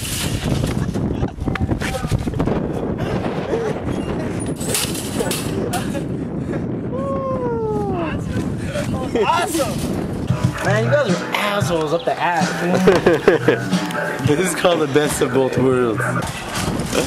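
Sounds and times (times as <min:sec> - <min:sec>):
voices: 0:06.9 - 0:17.0
people laughing: 0:12.4 - 0:14.5.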